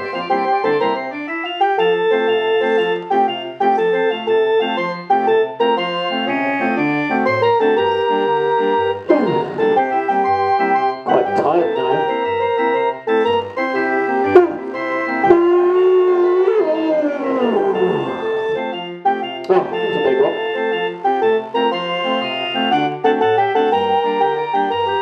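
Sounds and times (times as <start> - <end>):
barrel organ playing a tune: 0.0 - 25.0.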